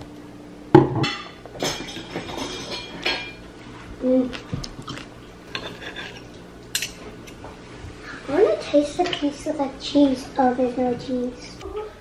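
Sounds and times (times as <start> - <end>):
fork scraping a ceramic plate: 4.9 - 7.0.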